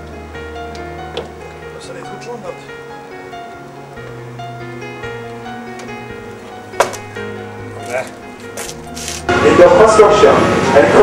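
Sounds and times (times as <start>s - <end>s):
heavy machinery rumbling: 5.1s - 11.0s
man speaking over loudspeaker: 9.3s - 11.0s.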